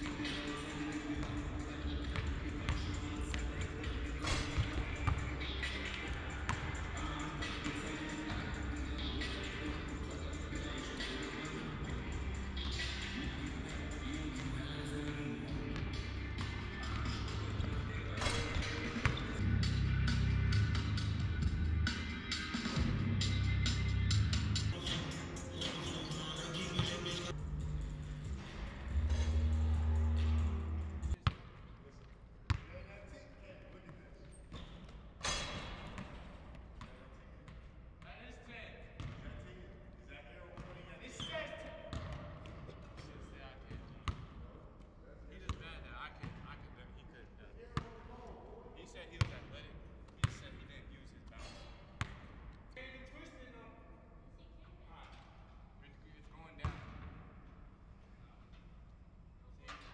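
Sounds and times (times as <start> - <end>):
music with heavy bass beat: 19.3 - 26.2.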